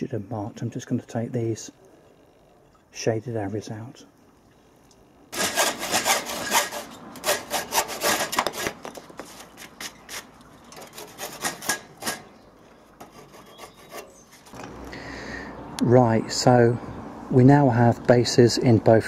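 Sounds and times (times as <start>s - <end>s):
handsaw cutting wood: 5.4s - 12.3s, 13.0s - 14.6s.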